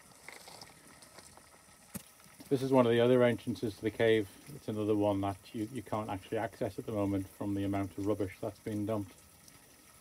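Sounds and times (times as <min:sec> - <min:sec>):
stream trickling: 0:00.0 - 0:10.0.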